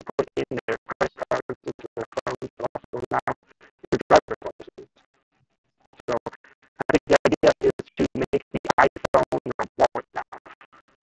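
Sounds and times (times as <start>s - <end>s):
man's garbled voice on a call: 0.0s - 4.8s, 6.1s - 10.6s.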